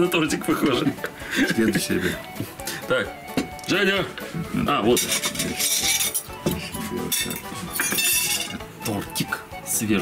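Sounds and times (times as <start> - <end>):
background music: 0.0 - 10.0
knife and china plates clinking: 4.9 - 8.7.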